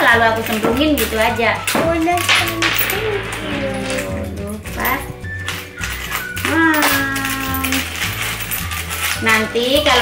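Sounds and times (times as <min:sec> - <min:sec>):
background music: 0:00.0 - 0:10.0
coins clinking on a table: 0:00.0 - 0:10.0.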